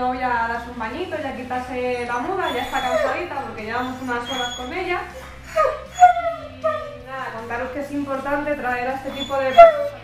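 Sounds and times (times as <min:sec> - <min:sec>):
dog making pitched calls: 0:01.9 - 0:07.1, 0:09.0 - 0:10.0.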